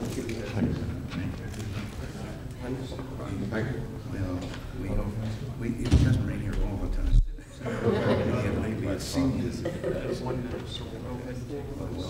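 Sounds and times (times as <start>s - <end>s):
low conversation: 0.0s - 12.0s.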